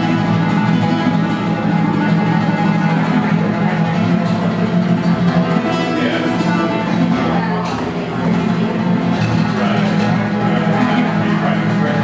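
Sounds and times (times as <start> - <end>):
latin jazz guitar: 0.0 - 12.0.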